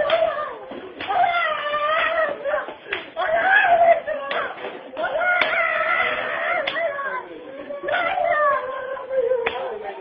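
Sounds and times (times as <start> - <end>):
high howling cry: 0.0 - 10.0.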